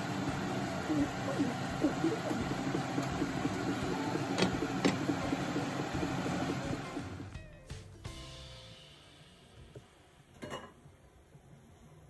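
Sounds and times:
liquid simmering in a frying pan: 0.0s - 7.3s.

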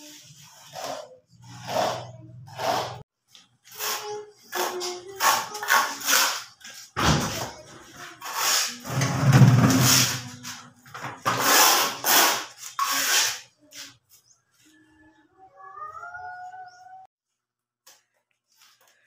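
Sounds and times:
trowel scraping mortar on concrete: 0.1s - 3.1s, 3.7s - 6.9s, 8.1s - 10.6s, 11.3s - 14.0s.

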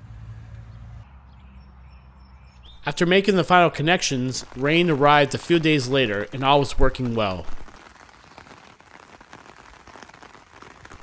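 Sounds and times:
light rain falling: 2.8s - 11.0s.

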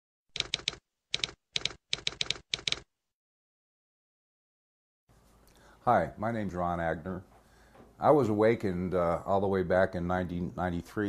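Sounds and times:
typewriter keys clacking: 0.4s - 2.8s.

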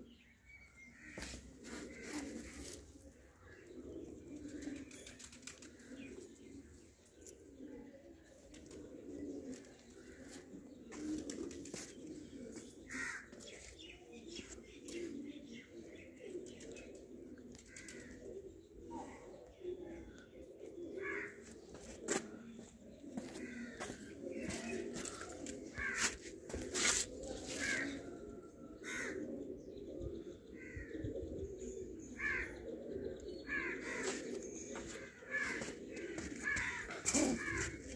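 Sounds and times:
pigeons cooing: 0.0s - 37.9s
short higher pigeon calls: 23.2s - 28.2s, 33.6s - 37.9s.

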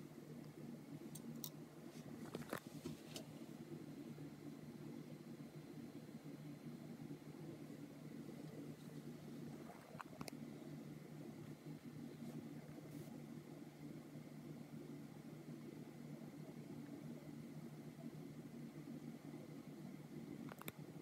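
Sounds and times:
faint low hum: 0.0s - 21.0s
small clicks: 20.4s - 20.8s.

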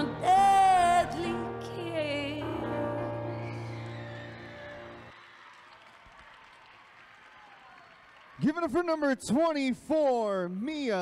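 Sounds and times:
faint scattered applause: 3.2s - 9.5s.

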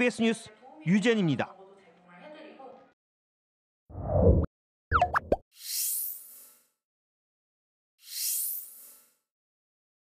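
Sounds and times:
bubbly electronic pops: 4.9s - 5.4s.

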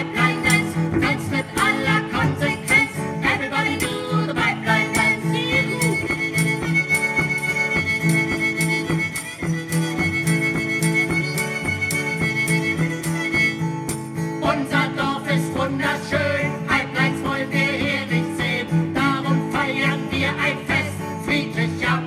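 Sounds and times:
fiddle playing dance tune: 0.0s - 14.3s
acoustic guitar: 0.0s - 22.0s.

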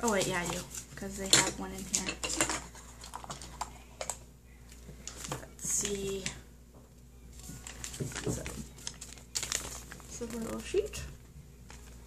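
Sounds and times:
packaging handled by hand: 7.4s - 11.0s.

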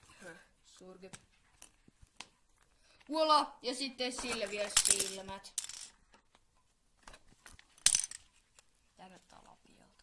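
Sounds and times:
plastic toy pieces ticking and rustling: 4.1s - 6.2s.

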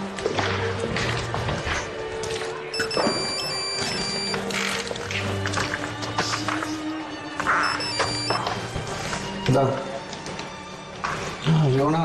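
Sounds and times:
soft background music: 0.0s - 12.0s
phone ringtone: 2.7s - 4.5s, 7.5s - 8.5s.

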